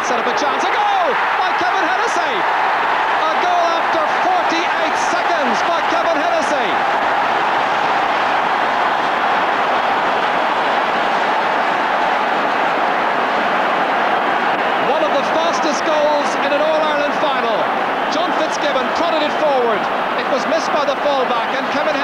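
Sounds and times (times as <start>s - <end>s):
individual shouts and voices: 0.0s - 6.8s
stadium crowd roaring and cheering: 0.0s - 22.0s.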